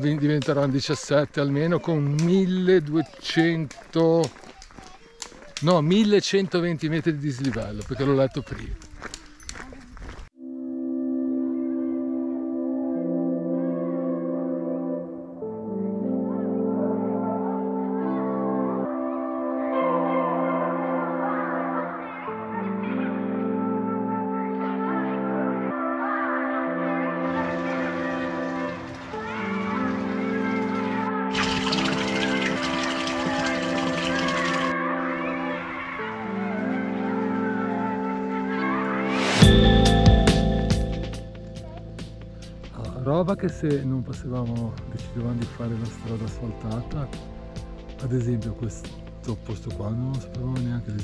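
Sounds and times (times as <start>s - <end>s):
faint outdoor rustle: 0.4s - 5.7s
background music with held notes: 10.4s - 51.0s
fountain water gushing and splashing: 28.0s - 34.7s.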